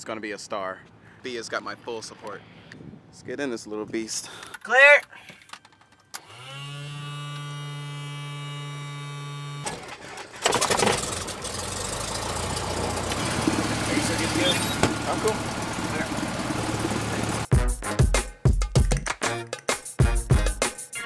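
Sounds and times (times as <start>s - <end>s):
electric hum: 6.2s - 9.7s
piston engine starting and running: 9.5s - 17.5s.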